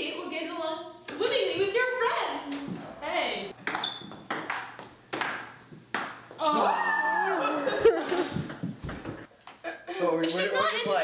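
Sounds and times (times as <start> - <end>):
ping pong ball hits: 3.6 - 6.3.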